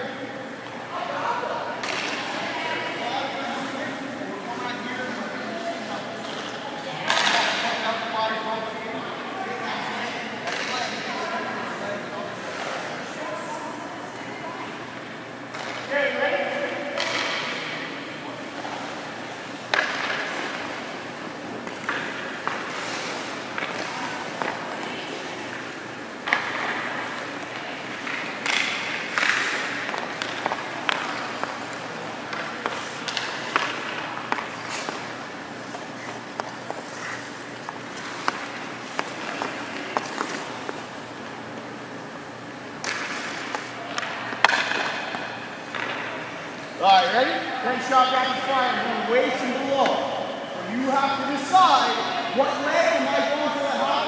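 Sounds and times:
hockey stick striking pucks: 1.8s - 2.4s, 6.2s - 7.8s, 10.4s - 11.1s, 15.5s - 15.9s, 17.0s - 17.7s, 18.5s - 41.4s, 42.8s - 46.4s
pucks hitting goalie pads: 1.8s - 3.0s, 6.2s - 8.1s, 10.4s - 11.4s, 15.5s - 16.0s, 16.9s - 17.8s, 18.5s - 41.4s, 42.7s - 46.5s
skate blades scraping ice: 18.4s - 41.0s, 42.8s - 46.8s.

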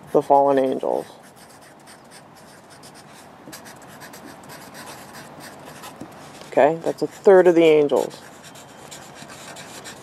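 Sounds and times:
marker scratching on paper: 0.0s - 10.0s.

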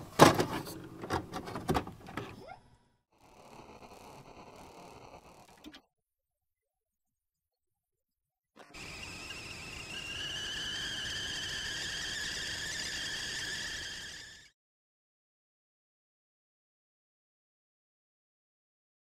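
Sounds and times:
kettle whistling: 8.6s - 14.6s.

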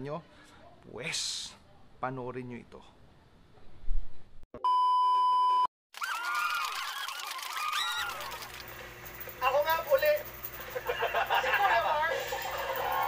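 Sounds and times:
high beep tone: 4.6s - 5.7s.

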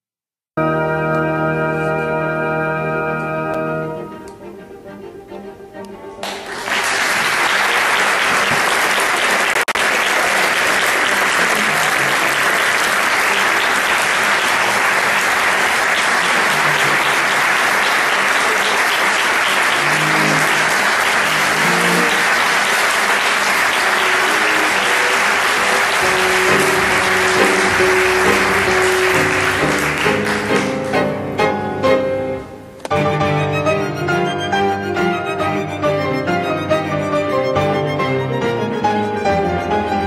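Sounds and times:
faint instrument notes: 0.6s - 6.6s, 10.6s - 40.0s
audience applauding: 6.2s - 31.6s.

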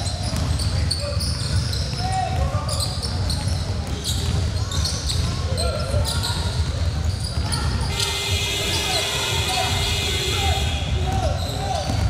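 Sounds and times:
sneakers squeaking: 0.0s - 9.8s, 10.8s - 12.0s
voices echoing in hall: 0.0s - 12.0s
basketball dribbling on wood floor: 0.2s - 0.8s.

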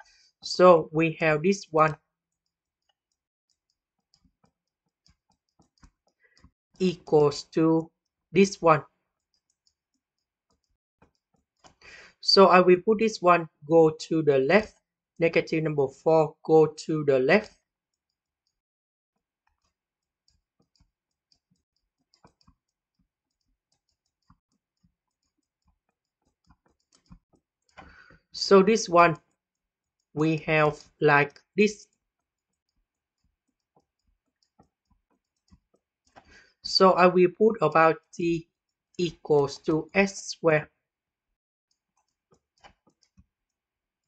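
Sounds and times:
stylus tapping on tablet: 2.3s - 6.6s, 19.4s - 28.2s, 31.9s - 36.5s.

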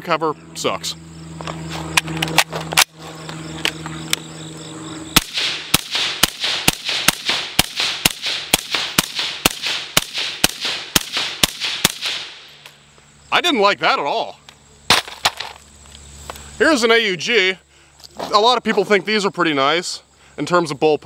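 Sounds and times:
suppressed rifle shots: 5.2s - 12.6s.

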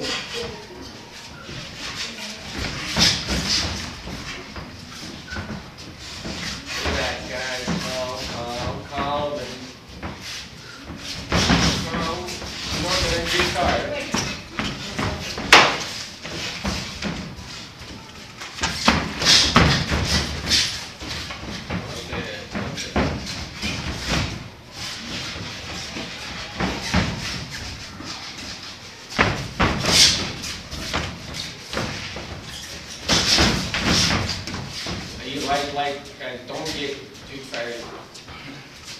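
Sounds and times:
boxing gloves punching: 14.6s - 17.3s.

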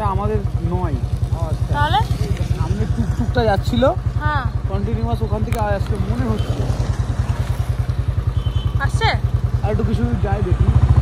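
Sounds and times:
motorcycle engine idling: 0.0s - 11.0s.

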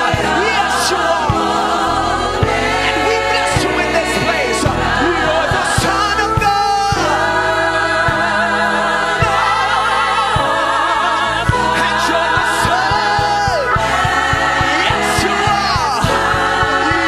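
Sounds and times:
band with piano organ and drums: 0.0s - 17.0s
choir singing a hymn: 0.0s - 17.0s.

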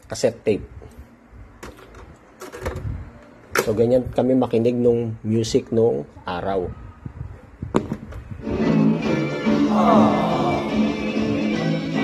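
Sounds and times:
music from cassette: 8.4s - 12.0s.

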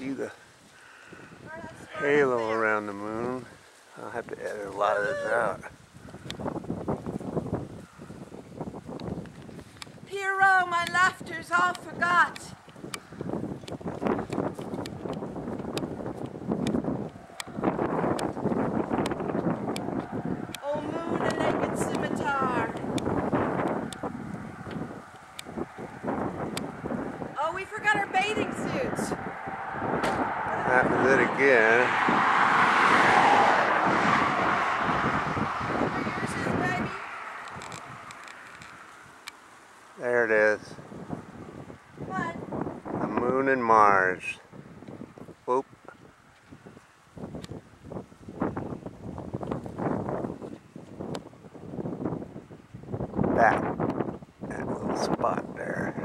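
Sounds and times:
wind noise on microphone: 0.0s - 56.0s
sharp clicks: 37.4s - 39.4s.

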